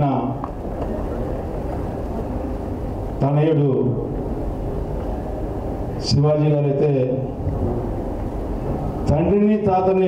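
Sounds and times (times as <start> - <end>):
low rumble with faint hiss: 0.0 - 10.0.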